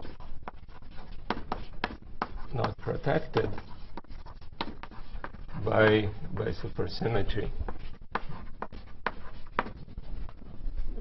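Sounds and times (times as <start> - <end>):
chalk writing on blackboard: 0.0 - 11.0.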